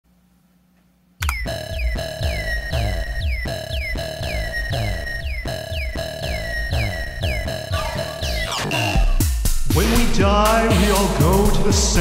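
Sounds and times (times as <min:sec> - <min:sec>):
techno track with bass beat: 0:01.3 - 0:12.0.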